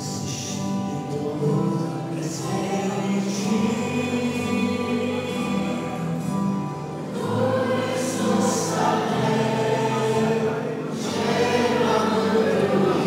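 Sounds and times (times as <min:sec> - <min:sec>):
choir singing a hymn: 0:01.1 - 0:13.0.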